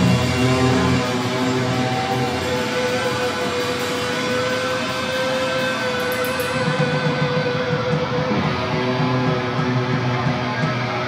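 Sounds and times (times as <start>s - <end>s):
electric guitar ringing notes: 0.0s - 11.0s
heavy metal band playing: 0.0s - 11.0s.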